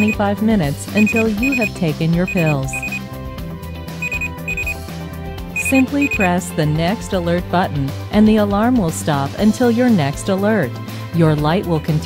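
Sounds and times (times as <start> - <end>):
background music: 0.0 - 12.0
short high alarm beeps: 1.0 - 1.7, 2.3 - 3.0, 4.0 - 4.8, 5.6 - 6.3.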